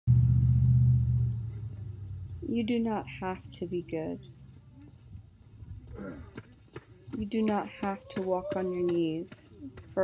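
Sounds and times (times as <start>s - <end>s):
loud low rumble: 0.1s - 4.6s.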